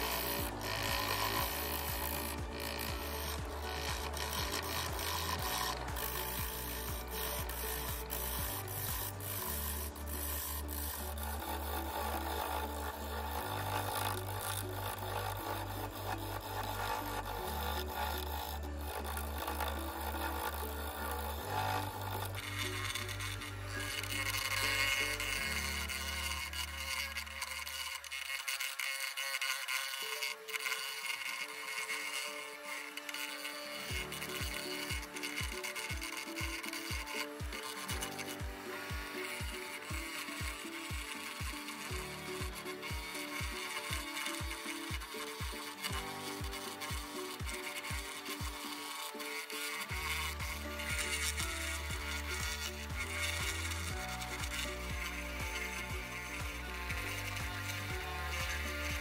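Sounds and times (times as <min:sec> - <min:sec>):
background music with bass: 0:00.0 - 0:28.2, 0:32.8 - 0:59.0
gouge scraping spinning wood: 0:00.0 - 0:59.0.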